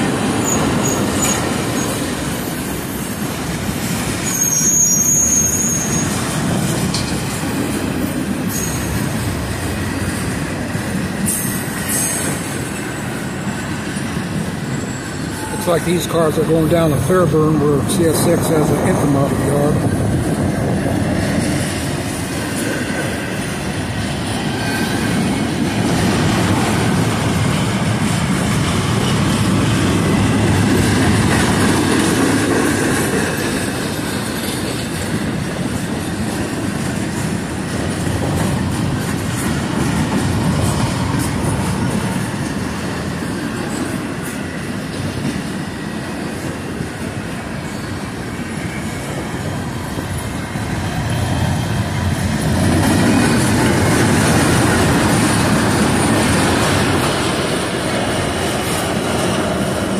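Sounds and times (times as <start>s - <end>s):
steel wheels rumbling on rail: 0.0s - 59.9s
light clicks of train wheels: 6.0s - 8.0s, 21.2s - 48.3s.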